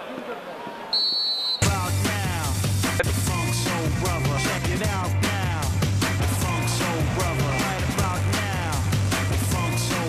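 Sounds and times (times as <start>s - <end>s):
referee's whistle blast: 0.9s - 1.8s
loud music with heavy beat: 1.6s - 10.0s.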